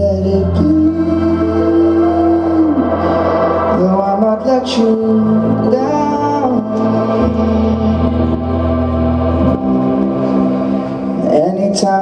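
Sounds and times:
bass guitar notes: 0.0s - 12.0s
electric keyboard chords: 0.0s - 12.0s
person singing: 0.0s - 12.0s.

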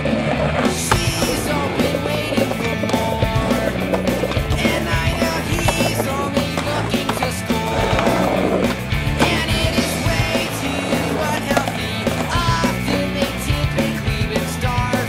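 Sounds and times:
music with repeating bass line: 0.0s - 15.0s
skateboard clacking and grinding: 0.0s - 15.0s
skateboard wheels rolling on pavement: 0.0s - 15.0s.

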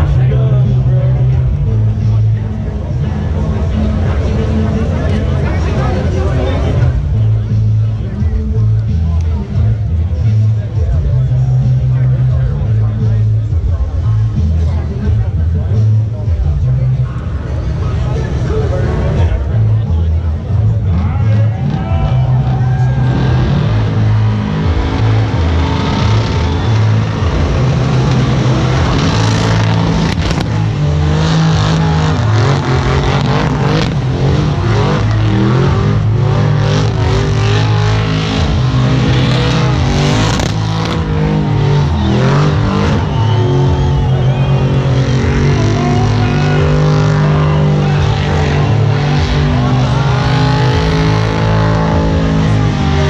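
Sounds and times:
car engine revving hard: 0.0s - 53.0s
spinning tyres rushing: 21.6s - 53.0s.

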